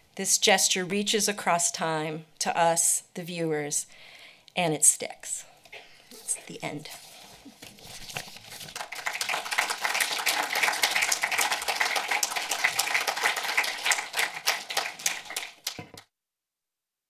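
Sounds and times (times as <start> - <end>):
audience applauding: 8.6 - 16.0.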